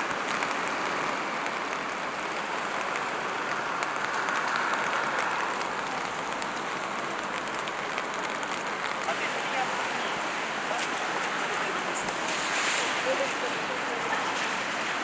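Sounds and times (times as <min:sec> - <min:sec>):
rain pattering on street: 0:00.0 - 0:15.0.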